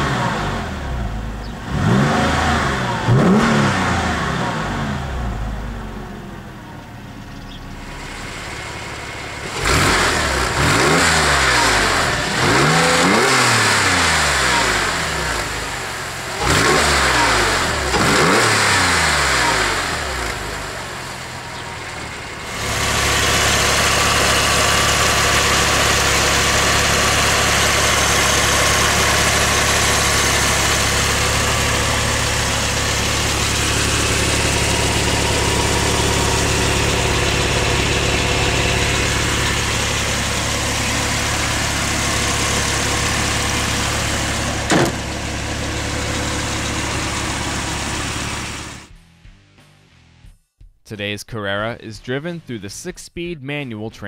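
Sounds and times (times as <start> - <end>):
car engine idling: 0.0 - 48.9
car engine revving: 0.0 - 48.9.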